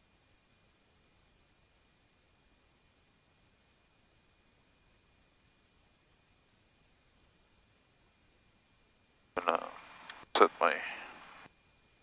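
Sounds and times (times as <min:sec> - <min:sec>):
man speaking: 0:09.4 - 0:09.8, 0:10.4 - 0:11.1.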